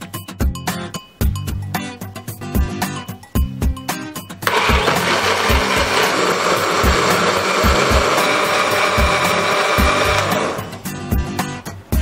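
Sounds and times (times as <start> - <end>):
blender motor grinding: 4.4 - 10.9.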